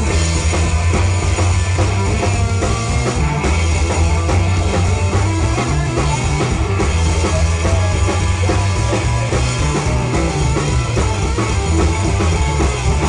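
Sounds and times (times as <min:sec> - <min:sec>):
blues band playing: 0:00.0 - 0:13.0.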